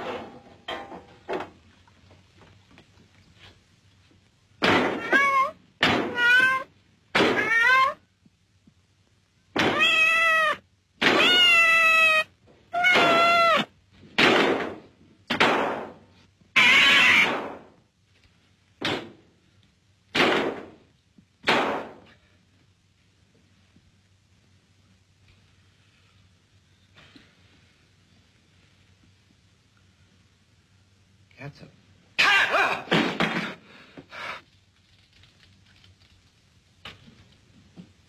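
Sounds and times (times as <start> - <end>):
cat meowing: 4.9 - 8.0, 9.6 - 13.7, 16.6 - 17.5.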